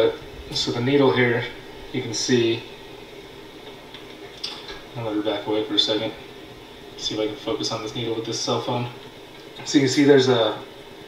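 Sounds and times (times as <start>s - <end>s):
background hiss: 0.0s - 11.0s.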